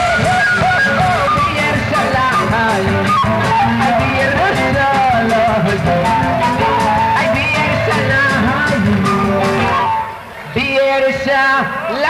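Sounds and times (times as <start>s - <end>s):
live band music: 0.0s - 10.7s
man singing: 0.0s - 11.1s
guitar: 0.0s - 12.0s.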